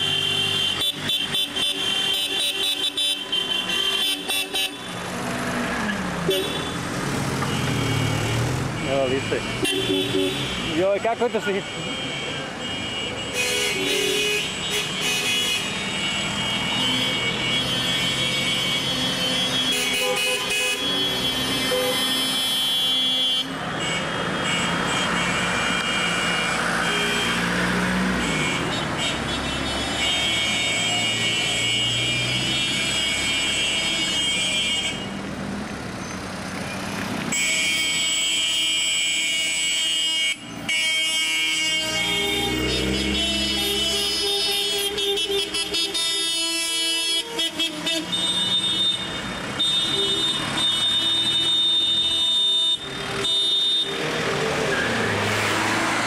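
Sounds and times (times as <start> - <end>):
car horns honking: 0.0 - 35.3, 37.2 - 56.0
engine and road noise: 0.0 - 56.0.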